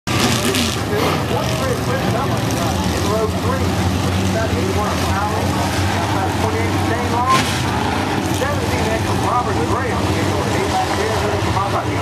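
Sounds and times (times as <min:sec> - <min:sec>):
race car engines droning: 0:00.1 - 0:12.0.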